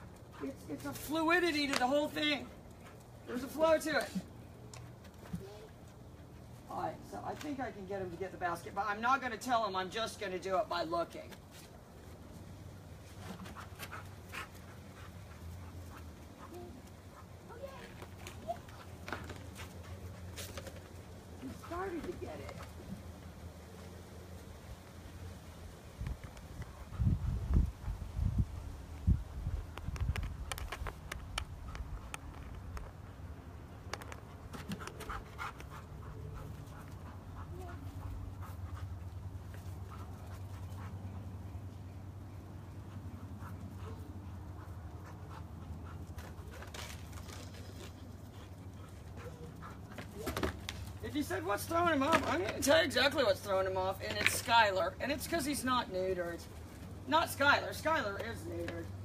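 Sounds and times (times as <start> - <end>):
dog scrapes and clicks: 33.8 - 41.0, 43.4 - 51.2.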